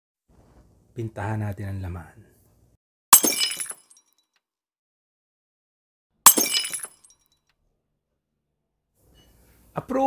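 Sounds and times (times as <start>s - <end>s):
glass shattering: 3.1s - 4.2s, 6.2s - 7.4s.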